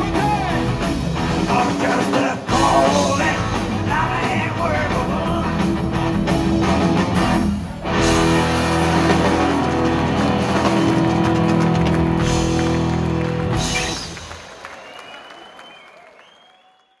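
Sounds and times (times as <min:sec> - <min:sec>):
rock band chord: 0:02.5 - 0:14.1
crowd applause and whistles: 0:07.8 - 0:17.0.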